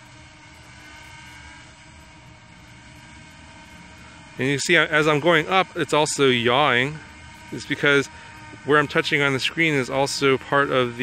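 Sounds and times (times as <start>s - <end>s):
drone propellers humming: 0.0s - 11.0s.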